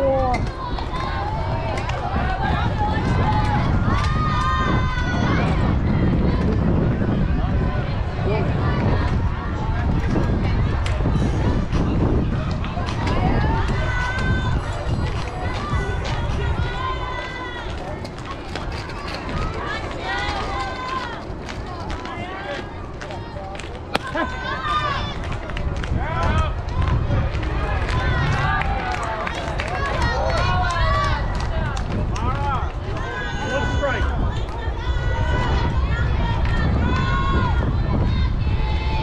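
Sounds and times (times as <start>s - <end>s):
players and spectators calling: 0.0s - 39.0s
steady low rumble: 0.0s - 39.0s.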